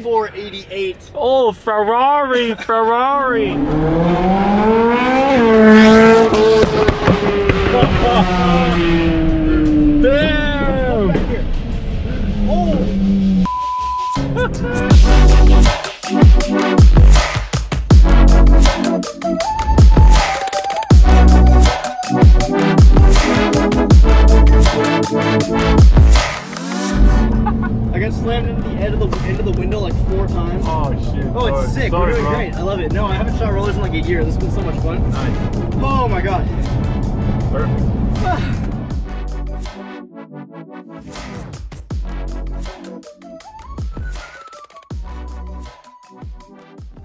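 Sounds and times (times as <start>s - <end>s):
man talking: 0.0s - 3.7s, 7.8s - 11.5s, 27.9s - 36.5s
road noise rumble in car: 3.5s - 13.5s, 26.1s - 39.0s
music: 13.4s - 27.6s, 28.2s - 47.0s
steady beep: 13.5s - 14.3s
car engine from inside cabin: 26.6s - 28.0s.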